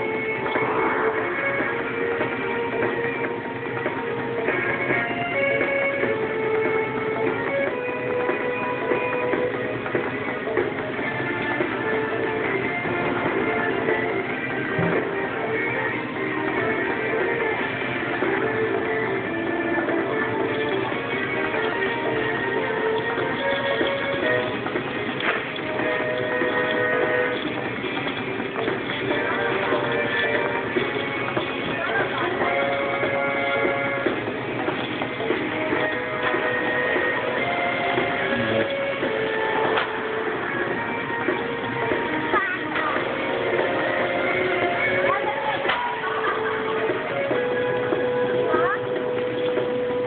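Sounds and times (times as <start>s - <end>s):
music with held notes: 0.0s - 50.0s
voices: 31.2s - 34.1s, 35.7s - 40.6s, 41.8s - 50.0s.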